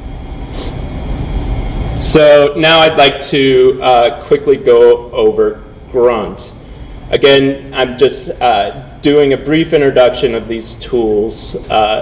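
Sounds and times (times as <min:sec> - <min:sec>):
low room rumble with hiss: 0:00.0 - 0:12.0.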